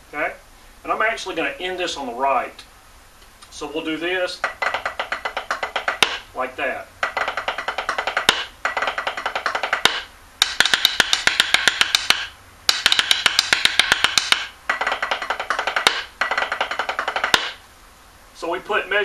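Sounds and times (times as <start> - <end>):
snare drum played with sticks: 4.4 - 6.4, 7.0 - 17.6.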